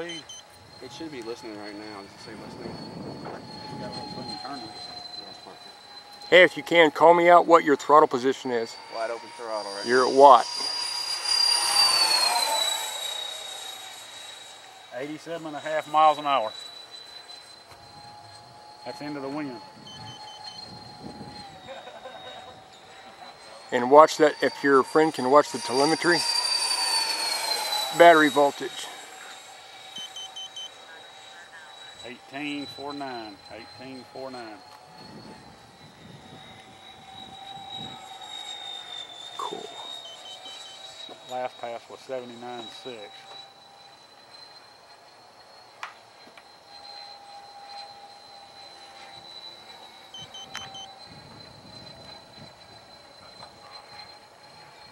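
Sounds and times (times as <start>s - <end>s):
wind rumble: 0.0s - 6.4s, 17.7s - 23.2s, 32.1s - 38.1s, 50.1s - 53.3s
model jet fan whining: 0.0s - 54.9s.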